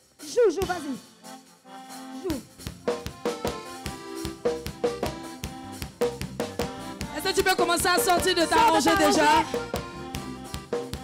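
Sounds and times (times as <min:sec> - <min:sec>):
drum kit: 0:00.0 - 0:11.0
worship band playing: 0:00.0 - 0:11.0.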